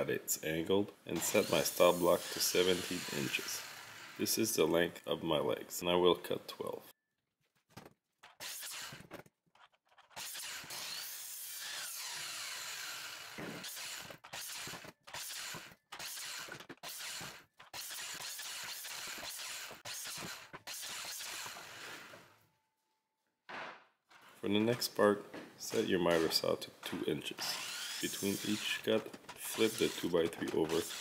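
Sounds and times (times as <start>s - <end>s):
miter saw cutting wood: 1.2s - 4.5s, 8.4s - 9.2s, 9.9s - 22.2s, 27.3s - 31.0s.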